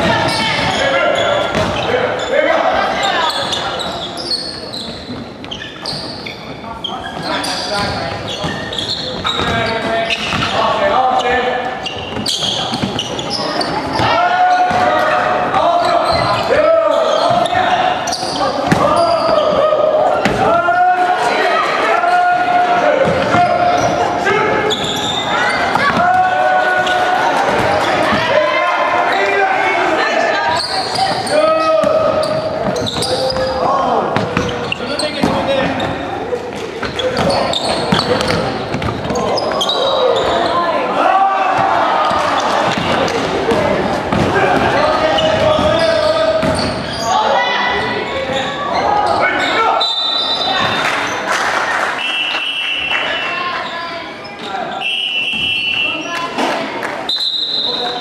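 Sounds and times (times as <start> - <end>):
people shouting: 13.9 - 32.2, 39.1 - 46.2.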